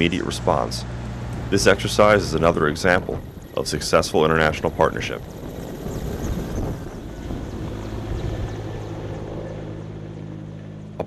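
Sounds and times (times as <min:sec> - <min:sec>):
helicopter rotor and turbine hum: 0:00.0 - 0:11.0.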